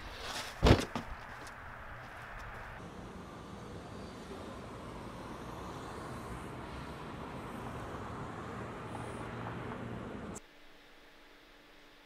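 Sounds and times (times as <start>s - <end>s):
vehicle engine and tyres rumbling: 0.0s - 10.4s.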